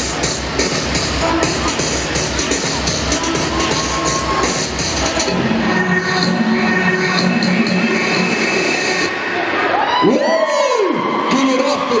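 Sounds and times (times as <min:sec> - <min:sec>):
audience cheering and whooping: 0:03.1 - 0:04.8, 0:09.1 - 0:12.0.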